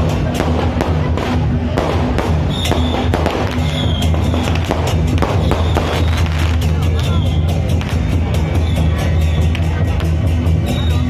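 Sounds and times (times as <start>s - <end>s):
firecrackers cracking: 0.0s - 8.6s
loud music with deep bass: 0.0s - 11.0s.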